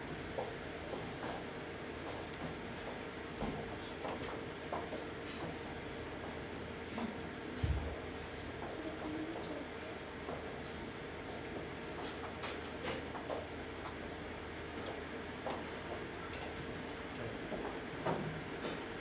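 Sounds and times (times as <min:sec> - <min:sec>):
soft voice murmuring: 0:08.7 - 0:10.0.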